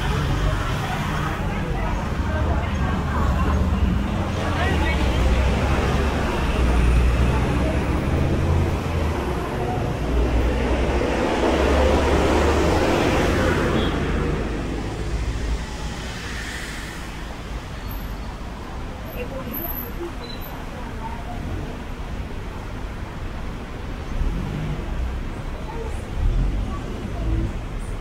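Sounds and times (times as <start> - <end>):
people talking in background: 0.0 - 28.0.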